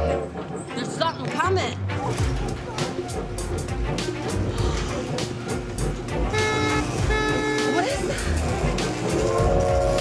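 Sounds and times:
train horn blasts: 0.0 - 0.4, 6.2 - 8.0.

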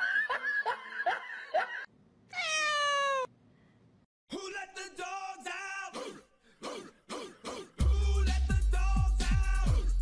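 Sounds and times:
cat meowing: 2.3 - 3.3
short rising cat cries: 2.3 - 3.3.

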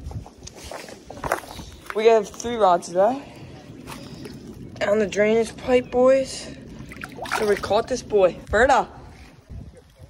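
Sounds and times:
footsteps on rocks and concrete: 0.1 - 3.1.

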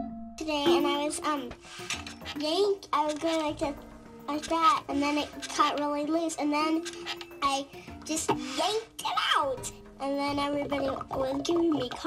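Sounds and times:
gamelan music: 0.0 - 8.9
girl speaking: 0.4 - 1.6, 2.3 - 12.0.

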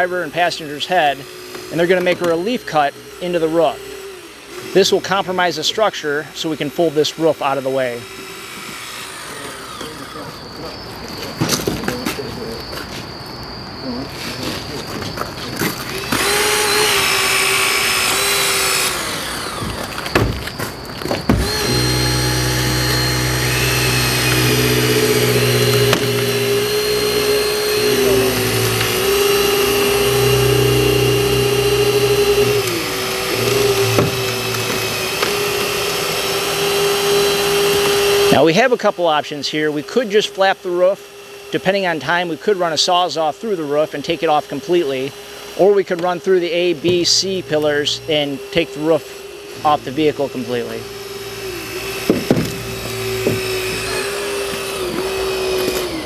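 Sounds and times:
hydraulic cutters cutting metal: 0.0 - 56.0
steady motor whine: 0.0 - 56.0.

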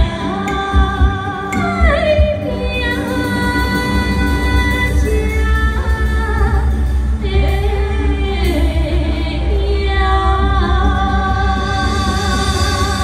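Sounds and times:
instrumental ensemble: 0.0 - 13.0
steady bass: 0.0 - 13.0
women singing with vibrato: 0.0 - 13.0.

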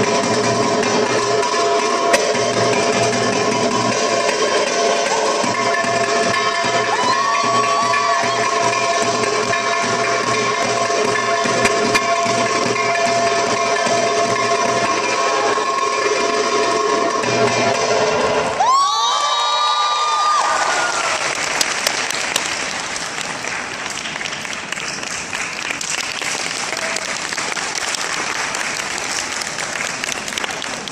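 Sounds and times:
crowd applauding and cheering: 0.0 - 17.8, 18.4 - 30.9
belly-dance drum music: 0.0 - 18.0.

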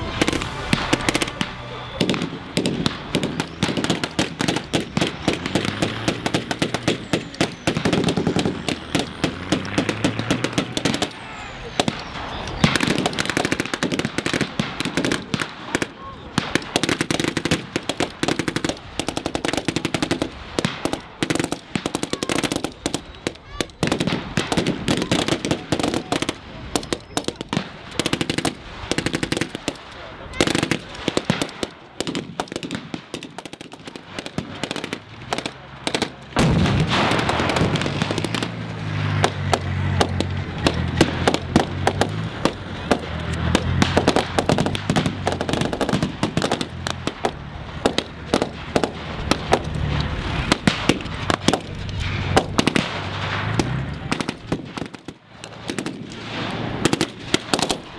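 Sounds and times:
gunshots and automatic bursts: 11.8 - 57.9.

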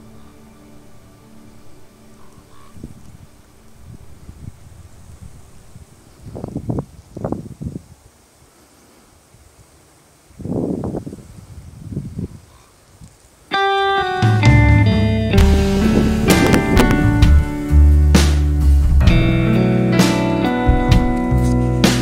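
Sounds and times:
background music: 0.0 - 3.9, 13.6 - 22.0
wind gusting on microphone: 2.3 - 13.4, 15.4 - 19.4.

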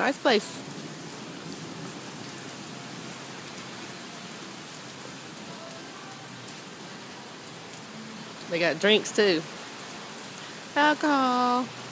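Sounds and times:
steady rain falling: 0.0 - 11.9.

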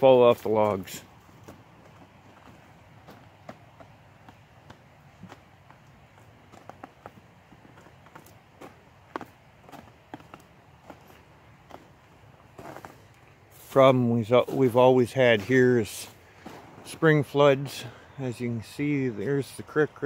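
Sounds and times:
boots crunching on snow: 0.3 - 17.3.

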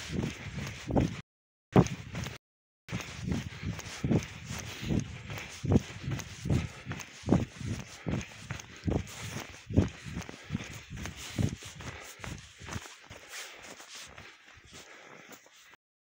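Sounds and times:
footsteps crunching in snow: 0.0 - 1.2, 1.8 - 15.8.

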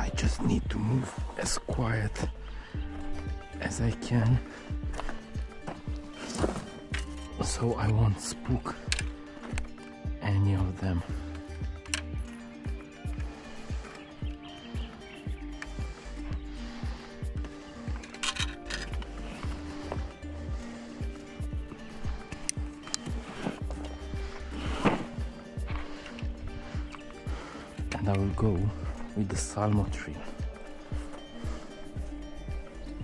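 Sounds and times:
background music with steady beat: 0.0 - 33.0.

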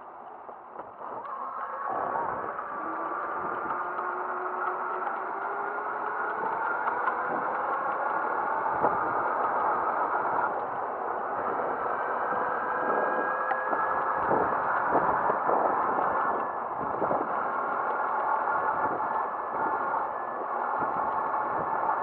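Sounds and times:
road noise and rattling: 0.5 - 22.0
motor scooter running: 1.0 - 22.0.

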